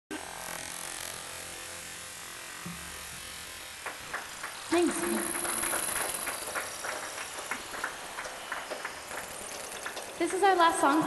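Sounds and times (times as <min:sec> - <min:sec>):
buzzing electronic noise: 0:00.1 - 0:10.2.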